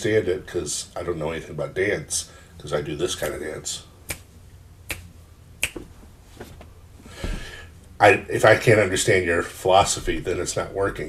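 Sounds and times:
finger snapping: 4.1 - 4.3, 4.9 - 5.9.

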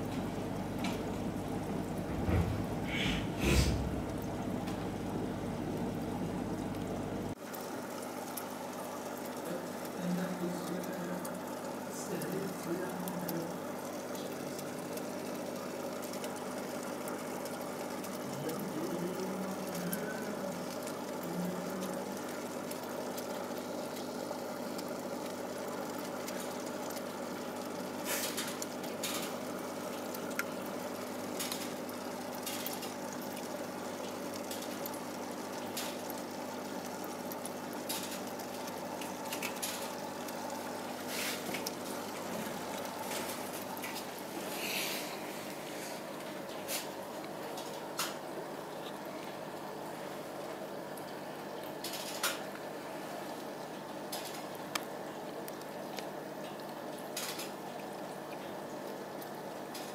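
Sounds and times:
aquarium pump humming: 0.0 - 59.9
moving water: 0.0 - 59.9.

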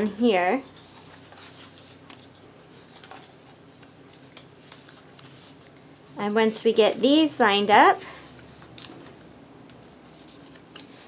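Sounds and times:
paper strips rustling: 0.3 - 11.0.

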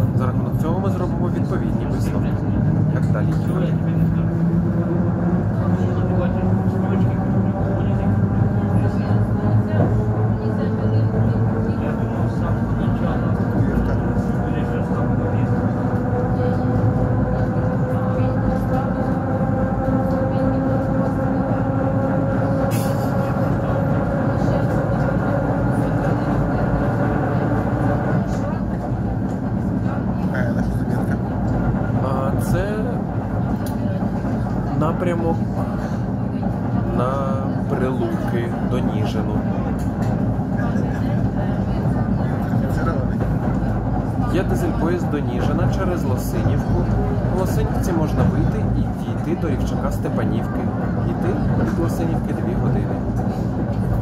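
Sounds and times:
train carriage rumble: 0.0 - 54.0.

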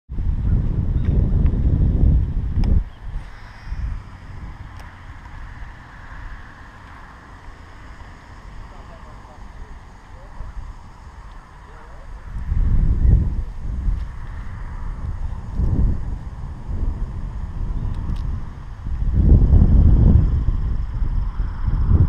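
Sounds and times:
faint hiss of breeze: 0.1 - 22.0
wind buffeting microphone: 0.1 - 22.0.

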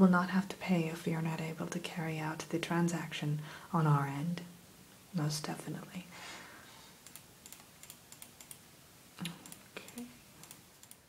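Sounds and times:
computer keyboard typing: 7.0 - 8.6, 9.4 - 11.0
soft voiced sound: 9.2 - 10.2.

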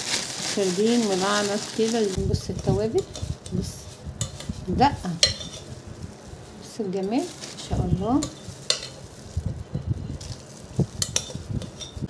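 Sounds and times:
plastic bag thumps: 0.0 - 2.2
plastic bag rustle: 0.0 - 12.0.

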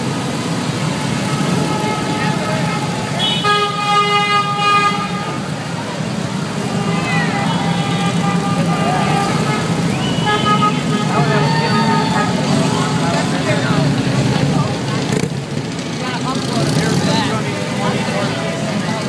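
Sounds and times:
spectators shouting: 1.1 - 13.6
motorcycles rumbling past: 10.9 - 19.0.

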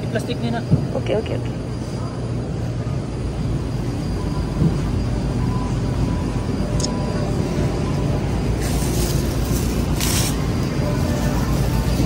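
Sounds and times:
shopping cart wheels rumbling: 7.0 - 12.0
plastic bag rustling: 8.6 - 12.0.

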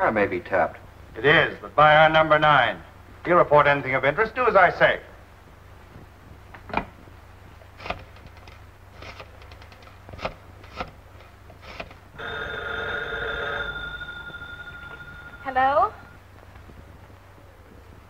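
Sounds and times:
telephone bell ringing: 12.2 - 16.2.

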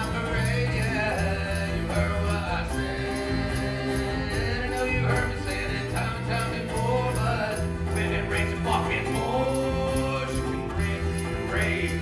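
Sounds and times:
person singing: 0.0 - 12.0
steady bass line: 0.0 - 12.0
strummed acoustic guitar: 0.0 - 12.0
ukulele: 0.0 - 12.0.

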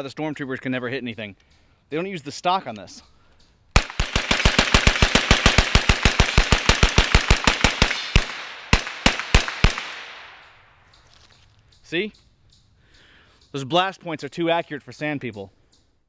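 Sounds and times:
carbine gunshots: 3.8 - 10.6.

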